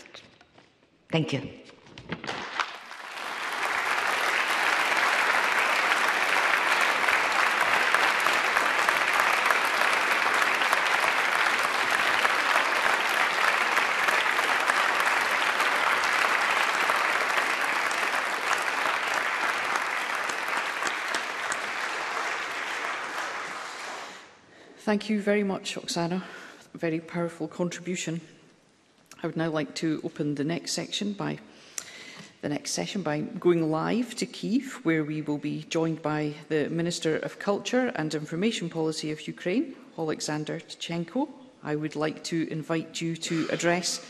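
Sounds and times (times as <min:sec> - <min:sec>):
audience applauding: 0:02.6 - 0:24.4.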